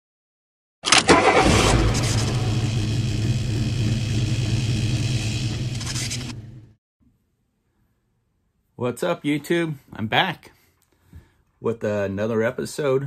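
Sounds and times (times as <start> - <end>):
car engine starting and idling: 0.9 - 6.7.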